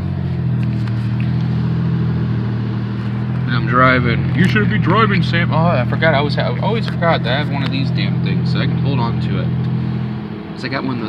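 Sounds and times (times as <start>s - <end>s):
car engine and road hum: 0.0s - 11.0s.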